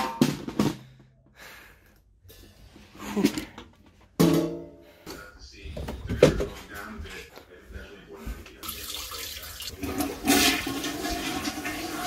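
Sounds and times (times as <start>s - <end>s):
toilet flushing: 8.6s - 12.0s.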